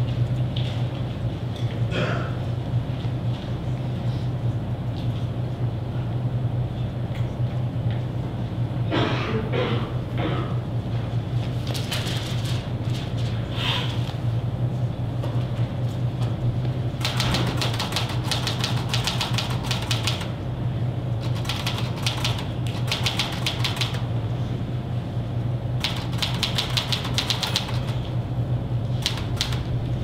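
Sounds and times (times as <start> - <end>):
steady low hum: 0.0 - 30.0
rapid typing on keyboard: 17.0 - 20.4, 21.2 - 24.1, 25.8 - 28.1, 28.9 - 29.7.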